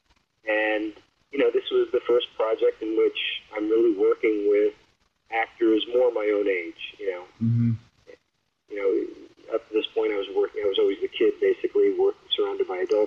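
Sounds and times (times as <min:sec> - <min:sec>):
person speaking: 0:00.5 - 0:04.7, 0:05.3 - 0:07.8, 0:08.7 - 0:13.0.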